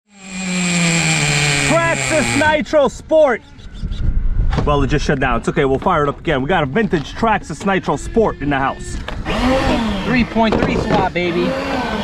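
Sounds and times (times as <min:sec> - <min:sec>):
toy truck engine buzzing whine: 0:00.1 - 0:02.5, 0:07.9 - 0:10.4, 0:11.3 - 0:12.0.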